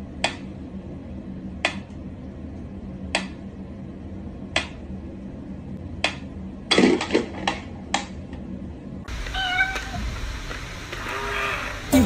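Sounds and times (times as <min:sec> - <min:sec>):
cat meowing: 0:09.3 - 0:10.1, 0:11.0 - 0:11.9.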